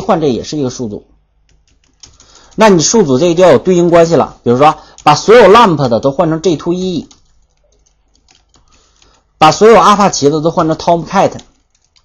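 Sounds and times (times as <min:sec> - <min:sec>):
computer keyboard key clicks: 0:01.5 - 0:02.6, 0:07.1 - 0:09.2, 0:11.4 - 0:12.0.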